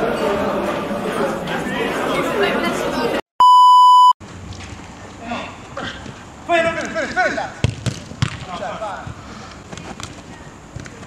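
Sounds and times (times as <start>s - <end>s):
background chatter of voices: 0.0s - 3.2s
steady test-tone beep: 3.4s - 4.2s.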